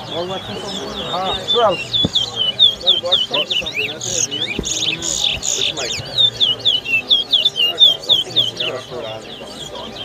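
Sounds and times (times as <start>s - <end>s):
finch whistling song: 0.0s - 10.0s
low voices murmuring: 0.0s - 10.0s.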